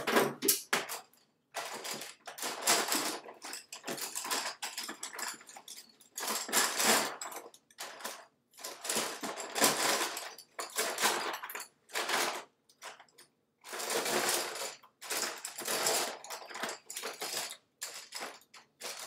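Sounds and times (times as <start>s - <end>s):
colored pencils rattling in a box: 0.0s - 19.0s.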